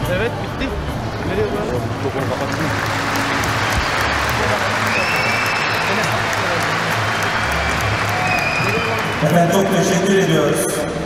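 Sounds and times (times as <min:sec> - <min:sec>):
audience applauding: 0:02.0 - 0:10.5.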